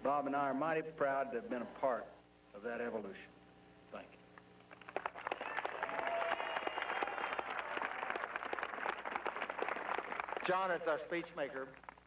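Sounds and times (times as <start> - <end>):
crowd applauding: 4.7 - 12.0.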